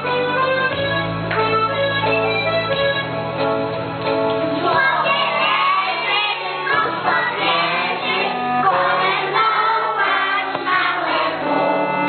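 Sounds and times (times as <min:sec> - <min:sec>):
musical accompaniment: 0:00.0 - 0:12.0
children singing a carol: 0:04.6 - 0:12.0.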